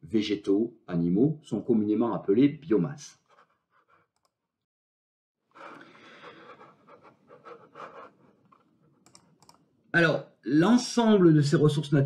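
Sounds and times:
faint irregular clicks: 6.9s - 9.7s.

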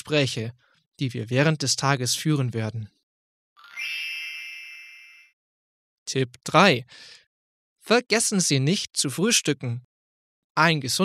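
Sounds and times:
bell-like chime: 3.6s - 5.4s.

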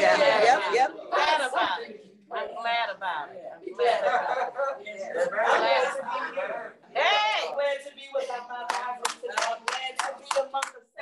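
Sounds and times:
hand claps: 8.7s - 10.8s.

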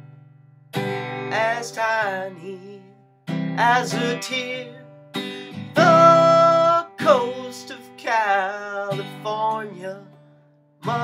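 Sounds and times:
acoustic guitar strumming: 0.0s - 11.0s
man singing: 1.3s - 3.0s, 3.6s - 10.2s.

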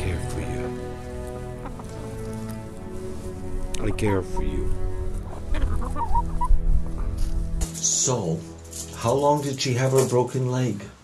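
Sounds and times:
steady low background: 0.0s - 9.9s
hens clucking: 1.2s - 7.4s.

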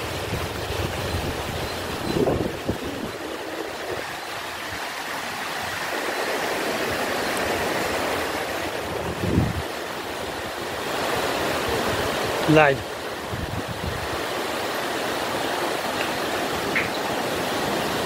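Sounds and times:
river rushing over stones: 0.0s - 18.0s.

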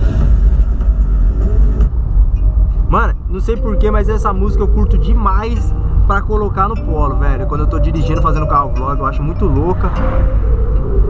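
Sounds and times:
car cabin rumble on dirt road: 0.0s - 9.9s.

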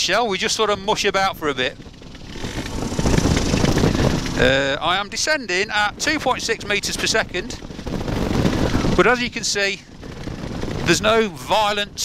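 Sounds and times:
engine idling: 0.1s - 12.0s
wind buffeting microphone: 0.2s - 12.0s.

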